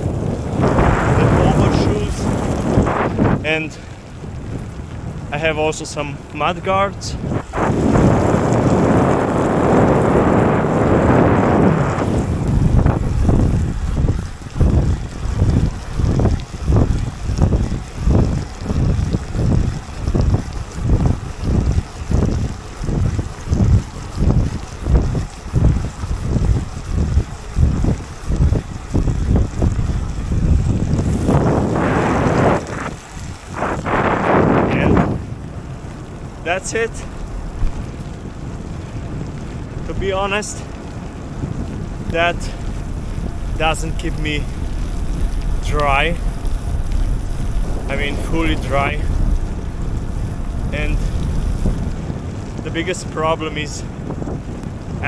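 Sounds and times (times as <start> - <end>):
wind noise on microphone: 0.0 - 55.0.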